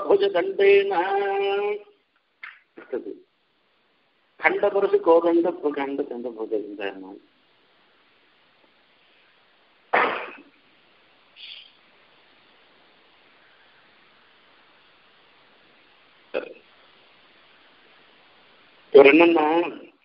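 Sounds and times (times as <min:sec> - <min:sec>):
man's throat sound: 0:09.9 - 0:10.5.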